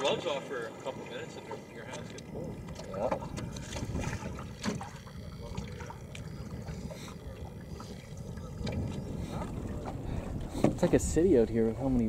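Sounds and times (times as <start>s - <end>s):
water lapping against boat: 0.0s - 12.0s
low rumble: 2.2s - 12.0s
wind on microphone: 2.3s - 12.0s.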